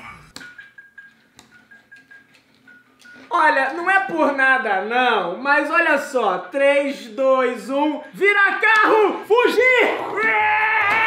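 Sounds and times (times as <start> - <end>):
toy electronic beeping tune: 0.4 - 3.3.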